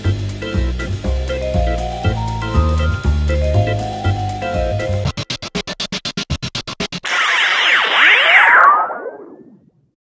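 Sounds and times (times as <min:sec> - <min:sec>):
high tone sliding down: 0:02.0 - 0:05.0, 0:07.0 - 0:09.7
synthesized swoosh: 0:07.0 - 0:09.6.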